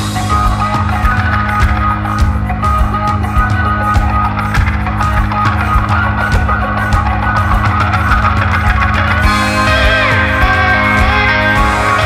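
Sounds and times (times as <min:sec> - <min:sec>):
guitar: 0:00.0 - 0:12.0
held bass notes: 0:00.0 - 0:12.0
steady drum beat: 0:00.0 - 0:12.0.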